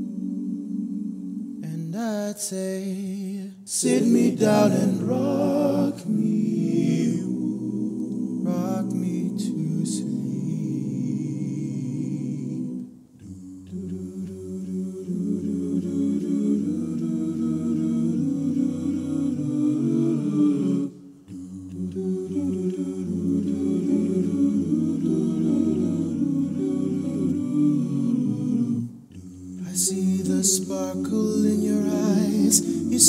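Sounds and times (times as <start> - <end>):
a cappella vocal harmonies: 0.0 - 33.0.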